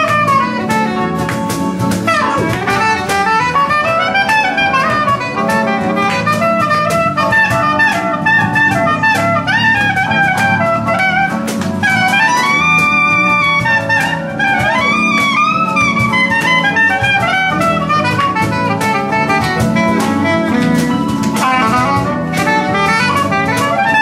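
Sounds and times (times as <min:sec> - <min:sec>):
acoustic band playing: 0:00.0 - 0:24.0
soprano saxophone solo: 0:00.0 - 0:24.0
steady percussion beat: 0:00.0 - 0:24.0.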